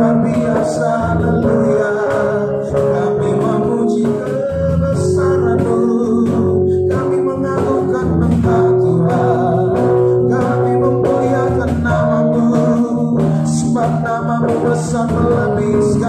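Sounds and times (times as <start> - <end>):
cajon beat: 0.0 - 16.0
electric guitars: 0.0 - 16.0
man singing: 0.0 - 16.0.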